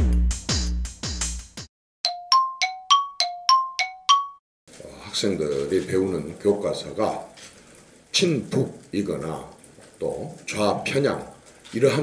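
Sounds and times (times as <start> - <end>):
two-note bell chime: 2.1 - 4.4.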